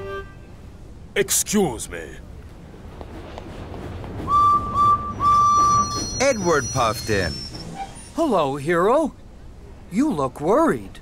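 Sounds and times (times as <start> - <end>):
steam locomotive whistle: 0.0 - 0.4, 4.3 - 7.5.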